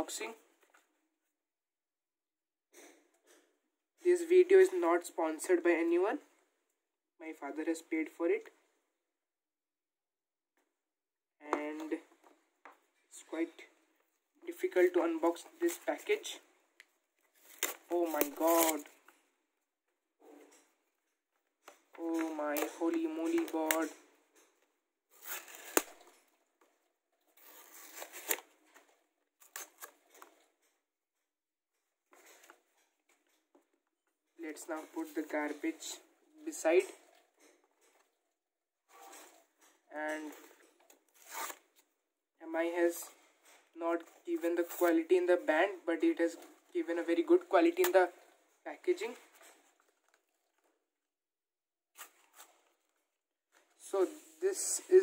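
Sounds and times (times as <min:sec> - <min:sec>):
paper packaging torn and crumpled: 0:17.3 - 0:19.0, 0:25.2 - 0:26.2, 0:27.4 - 0:28.6.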